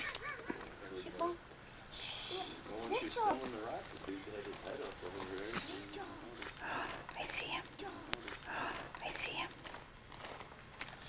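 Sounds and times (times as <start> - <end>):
people talking in hushed voices: 0.0 - 9.7.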